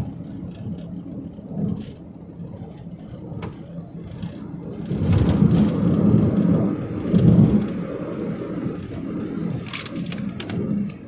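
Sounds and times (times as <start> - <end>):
vehicle road and engine rumble: 0.0 - 11.0.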